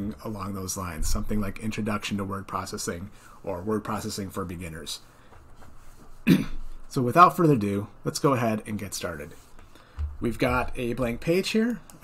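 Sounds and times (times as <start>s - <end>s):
man clearing throat: 6.2s - 6.6s.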